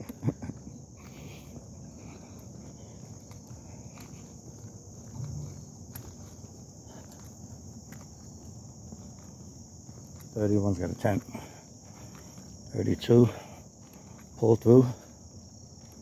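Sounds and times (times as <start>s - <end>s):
crickets chirping: 0.0s - 16.0s
footsteps on paved road: 0.0s - 16.0s.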